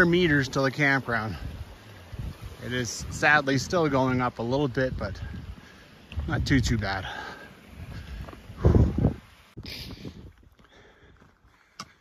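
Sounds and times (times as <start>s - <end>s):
footsteps on rocky dirt trail: 0.0s - 12.0s
person breathing heavily: 5.2s - 6.1s, 7.0s - 12.0s.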